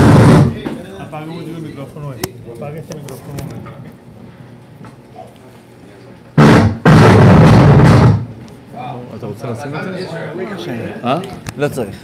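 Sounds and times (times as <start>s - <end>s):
microphone handling noise bursts: 6.4s - 8.4s.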